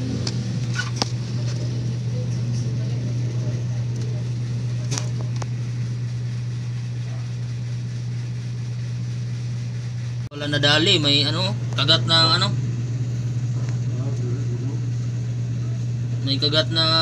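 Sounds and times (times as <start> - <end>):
machine humming: 0.0 - 17.0.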